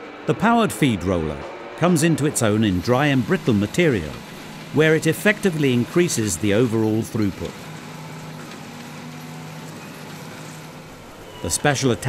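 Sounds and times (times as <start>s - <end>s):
baler machine hum: 0.0s - 12.0s
hiss of pickup gathering straw: 2.4s - 11.8s.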